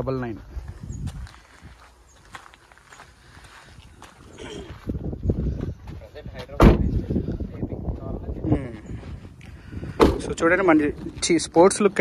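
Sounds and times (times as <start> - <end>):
car door slamming: 6.6 - 6.9.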